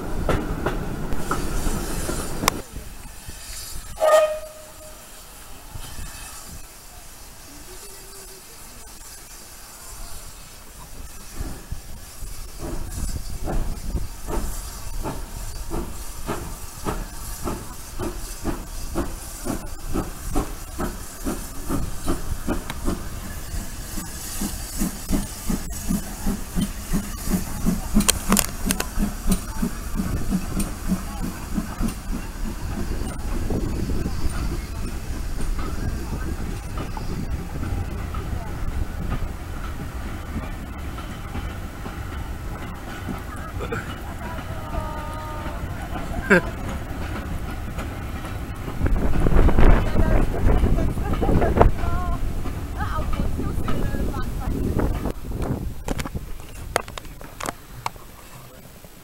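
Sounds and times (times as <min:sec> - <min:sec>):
carriages rumbling: 0:00.0 - 0:03.0, 0:06.9 - 0:59.0
steam locomotive exhaust beats: 0:00.0 - 0:58.1.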